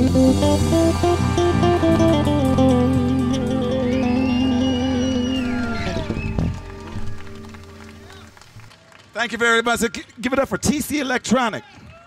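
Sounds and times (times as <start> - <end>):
electric bass guitar: 0.0 - 8.1.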